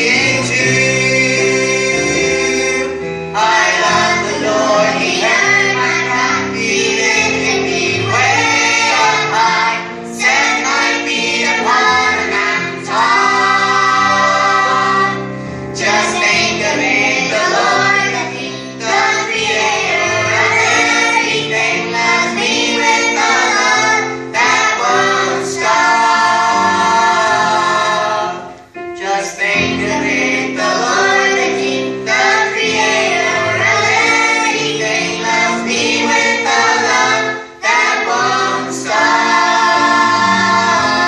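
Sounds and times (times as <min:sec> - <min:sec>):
children singing into microphones: 0:00.0 - 0:41.0.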